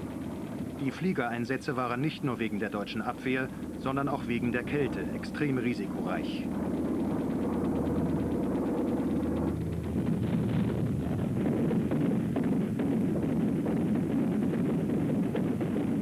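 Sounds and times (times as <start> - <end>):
aircraft engines drone: 0.0 - 16.0.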